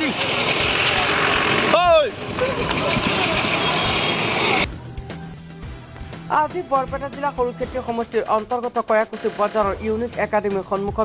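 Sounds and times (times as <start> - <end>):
road traffic rushing: 0.0 - 4.7, 8.9 - 10.2.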